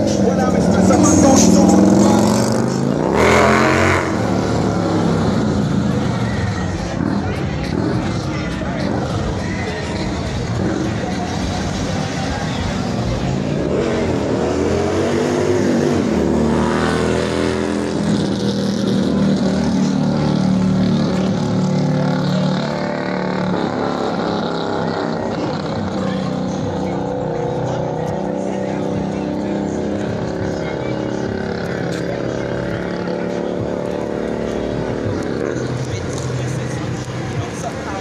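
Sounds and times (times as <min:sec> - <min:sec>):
car engine revving: 0:00.0 - 0:38.0.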